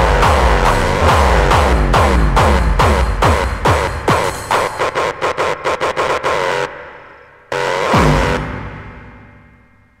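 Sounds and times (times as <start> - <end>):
deep falling kick: 0.0 - 4.3
hardcore techno beat: 0.0 - 9.4.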